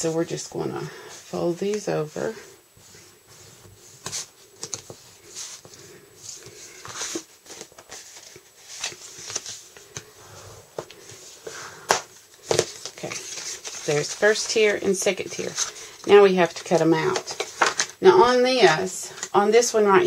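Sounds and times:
paper rustling and scraping: 1.1s - 10.1s, 10.8s - 19.3s.

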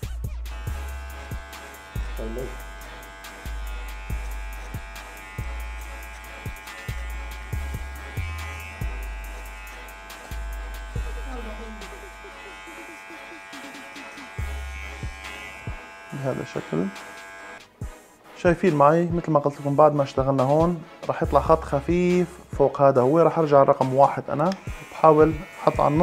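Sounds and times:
low pulsing music beat: 0.1s - 18.1s
hair clipper motor hum: 0.5s - 17.6s, 24.5s - 26.0s.

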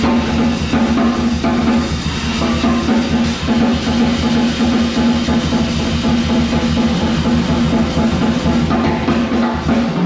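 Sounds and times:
drum kit with cymbals: 0.0s - 10.0s.

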